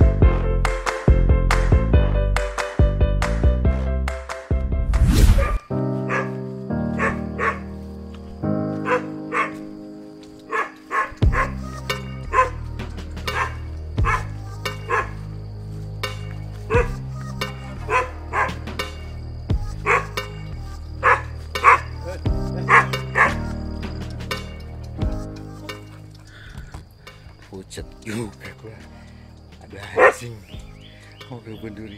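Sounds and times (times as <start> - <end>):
background music: 0.0 - 31.9
whoosh: 4.8 - 5.6
dog barking: 5.4 - 6.4, 7.0 - 7.7, 8.8 - 9.7, 10.5 - 11.6, 12.3 - 12.6, 13.3 - 14.3, 14.9 - 15.2, 16.7 - 16.9, 17.8 - 18.6, 19.8 - 20.2, 21.0 - 22.0, 22.6 - 23.4, 29.9 - 30.3.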